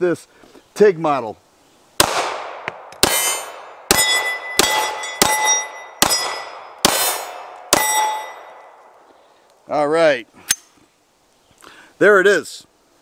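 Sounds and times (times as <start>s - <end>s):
pistol shots: 2.0s - 8.6s
steel target ringing clang: 3.0s - 8.8s.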